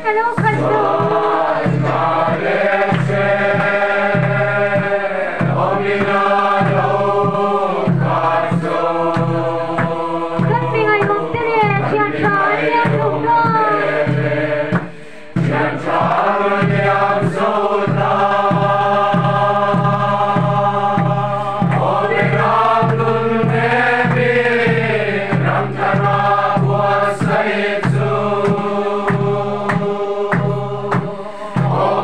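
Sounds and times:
group singing hymn in chorus: 0.3s - 32.0s.

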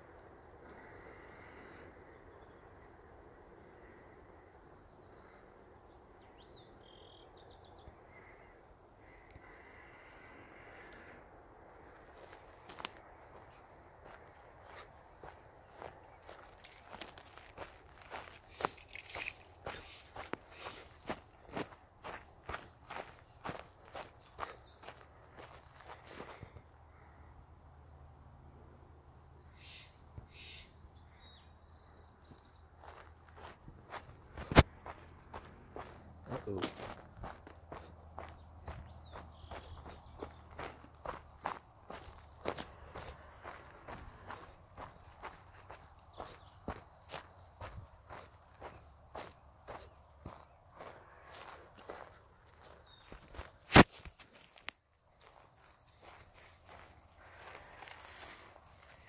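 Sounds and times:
footsteps on dry grass: 11.8s - 26.6s, 32.2s - 59.0s.

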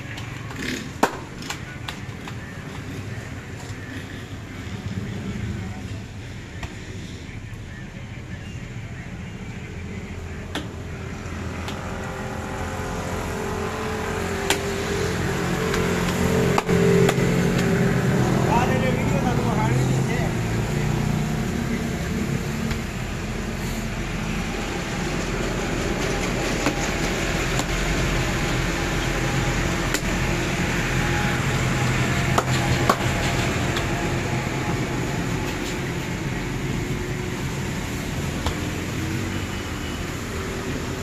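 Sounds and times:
faint voices: 0.0s - 14.4s.

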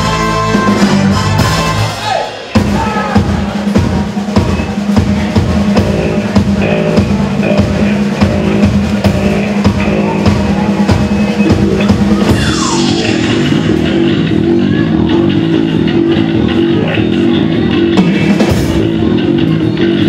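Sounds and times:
electric bass: 0.0s - 2.0s, 2.6s - 20.0s
drum kit: 0.0s - 20.0s
keyboards: 0.0s - 20.0s.

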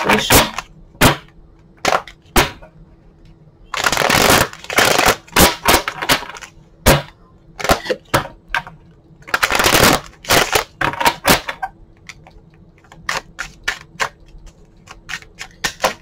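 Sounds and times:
cards clacking together: 12.0s - 16.0s.

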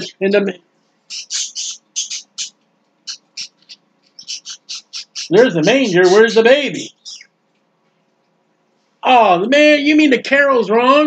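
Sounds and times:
small bird chirping: 1.0s - 7.4s.

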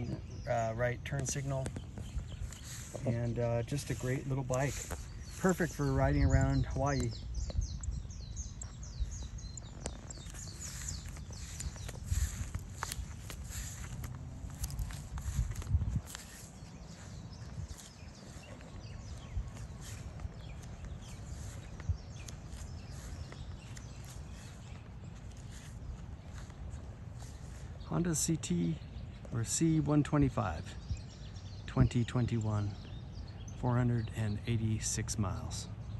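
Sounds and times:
wind rumble on microphone: 0.0s - 27.8s
footsteps on grass: 0.0s - 28.2s
birds chirping: 0.0s - 35.9s.

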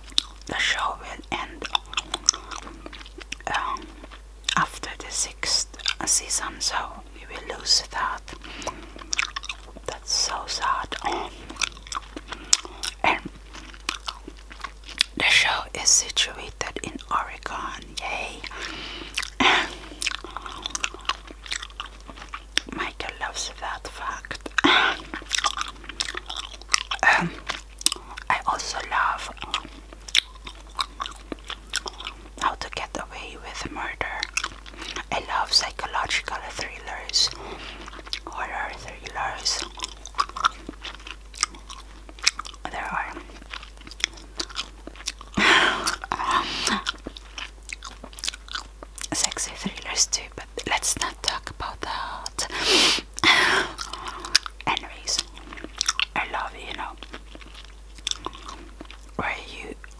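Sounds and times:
open-mouthed gum chewing: 0.0s - 59.9s.

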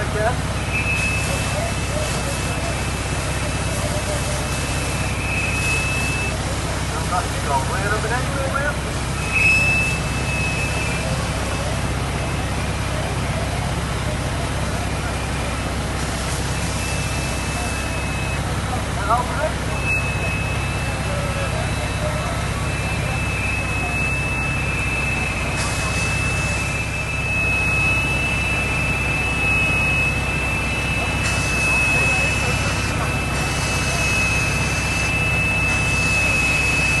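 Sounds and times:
diesel engines and pumps droning: 0.0s - 37.0s
high-pitched whine: 15.0s - 37.0s.

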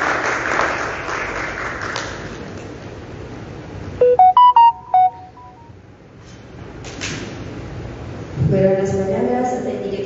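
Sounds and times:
electronic chime jingle: 4.0s - 5.7s.

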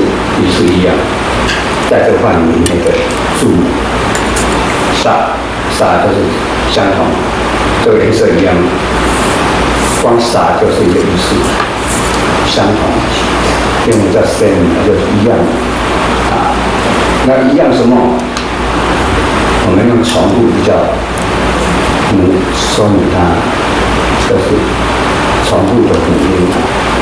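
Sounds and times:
man lecturing: 0.0s - 1.2s, 1.8s - 3.9s, 4.9s - 18.4s, 19.6s - 21.2s, 22.0s - 24.8s, 25.4s - 26.8s
man speaking: 0.0s - 1.2s, 1.8s - 3.9s, 4.9s - 9.0s, 9.8s - 11.6s, 12.3s - 18.4s, 19.6s - 24.8s, 25.4s - 26.8s
low rumble and hiss: 0.0s - 27.0s.

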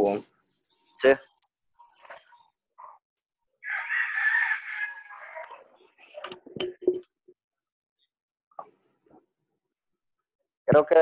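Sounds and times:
rooster crowing: 3.6s - 5.7s.

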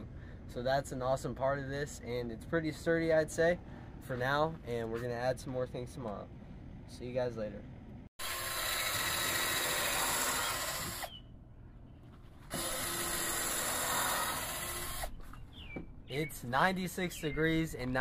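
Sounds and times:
cordless drill running: 8.2s - 11.2s, 12.5s - 15.2s.

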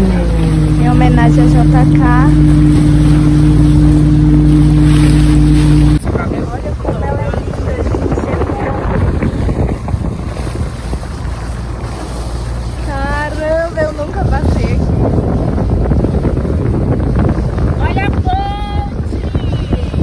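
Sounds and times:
voices: 0.0s - 3.3s, 6.0s - 9.3s, 17.7s - 20.0s
motorboat engine humming: 0.0s - 20.0s
rushing water: 0.0s - 20.0s
wind buffeting microphone: 0.0s - 20.0s.

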